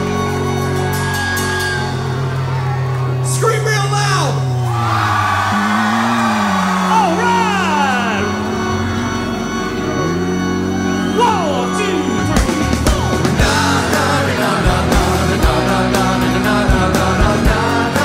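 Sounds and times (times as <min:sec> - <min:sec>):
rock music with sliding notes: 0:00.0 - 0:04.8, 0:06.6 - 0:18.0
vocal whoops falling in pitch: 0:04.6 - 0:11.8.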